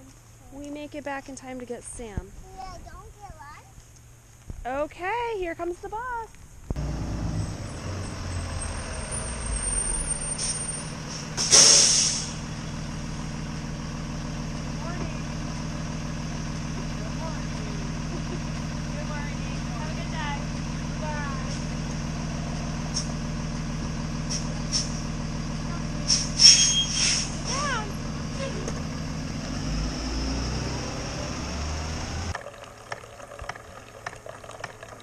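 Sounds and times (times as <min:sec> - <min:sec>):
bus engine idling: 0:06.8 - 0:32.3
air brake hiss: 0:10.1 - 0:12.4, 0:24.3 - 0:25.0, 0:26.1 - 0:27.6.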